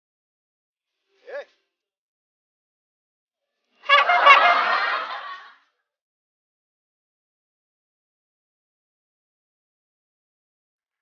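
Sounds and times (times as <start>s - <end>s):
honking goose-like call: 3.9s - 5.1s.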